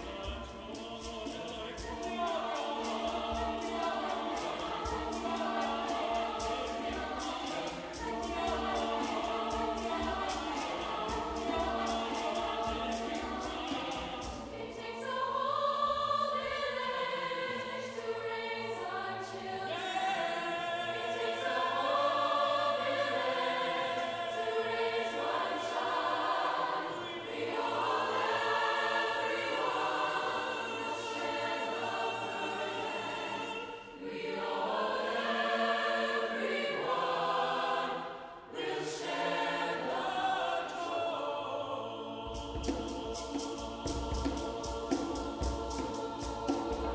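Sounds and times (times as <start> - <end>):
choir singing sustained chords: 0.0 - 46.9.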